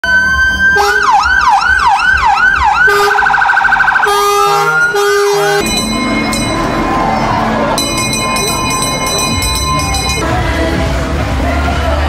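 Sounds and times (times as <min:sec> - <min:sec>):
electronic siren: 0:00.0 - 0:07.8.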